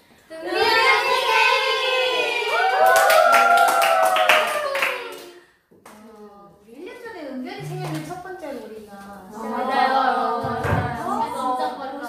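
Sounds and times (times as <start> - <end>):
young women singing: 9.3 - 11.4.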